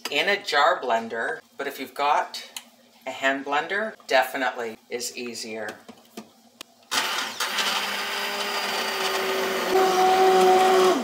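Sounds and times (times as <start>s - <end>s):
hand blender motor whine: 6.9s - 11.0s.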